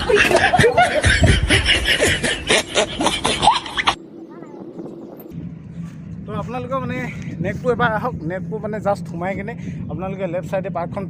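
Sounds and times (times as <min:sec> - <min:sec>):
person chuckling: 0:00.0 - 0:04.0.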